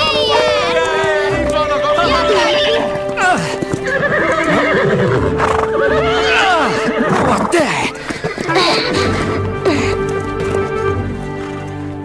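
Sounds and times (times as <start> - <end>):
background music with long notes: 0.0 - 12.0
cartoon horses whinnying: 2.0 - 10.0.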